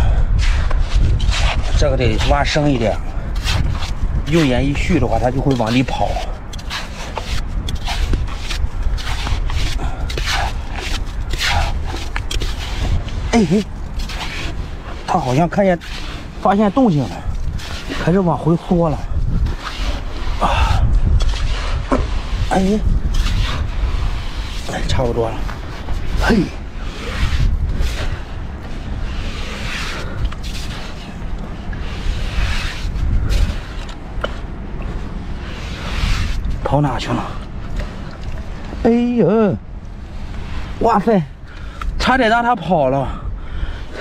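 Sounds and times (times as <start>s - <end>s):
hand shovel scraping in sand: 0.0s - 39.1s
steady low rumble: 0.0s - 44.0s
wind buffeting microphone: 0.0s - 44.0s.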